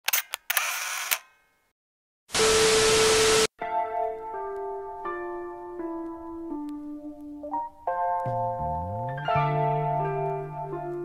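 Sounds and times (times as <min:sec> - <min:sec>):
camera shutter clicks: 0:00.1 - 0:01.3
camera whirring: 0:00.5 - 0:01.2.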